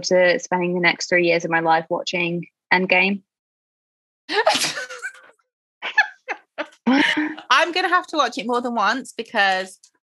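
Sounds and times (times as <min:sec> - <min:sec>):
woman sneezing: 0:04.4 - 0:05.0.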